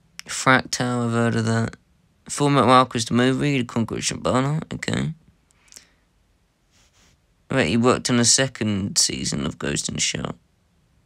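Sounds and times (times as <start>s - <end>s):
soft hiss: 0.0s - 11.0s
man speaking: 0.2s - 5.2s, 7.5s - 10.4s.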